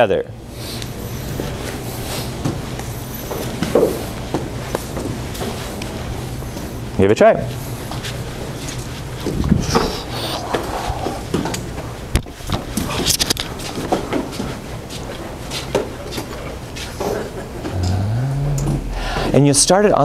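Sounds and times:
steady room hum: 0.0 - 20.0.

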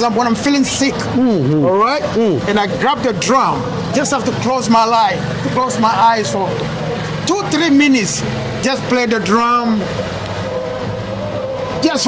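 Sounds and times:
man talking: 0.0 - 9.9
machine hum: 0.0 - 12.0.

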